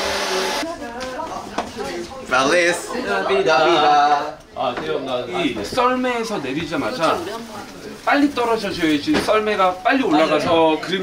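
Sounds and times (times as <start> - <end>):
people talking: 0.3 - 11.0.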